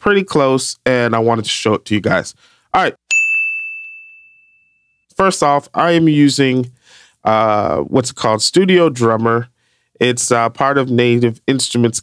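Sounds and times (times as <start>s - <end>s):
bright bell ding: 3.1s - 5.0s.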